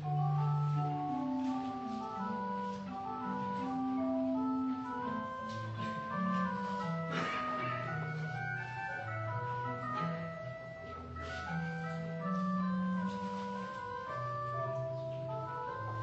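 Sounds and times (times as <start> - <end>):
church organ chords: 0.0 - 16.0.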